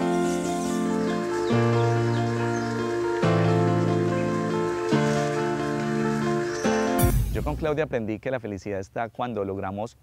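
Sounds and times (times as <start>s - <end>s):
sustained music chords: 0.0s - 7.8s.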